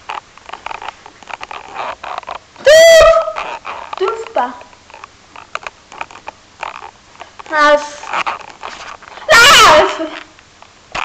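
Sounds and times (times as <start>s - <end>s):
soft scuffing against camera: 3.0s - 9.3s.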